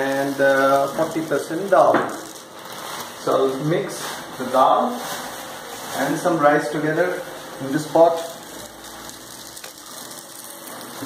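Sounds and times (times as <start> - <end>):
rice grains pouring into plastic cup: 0.0 - 5.0, 7.1 - 11.0.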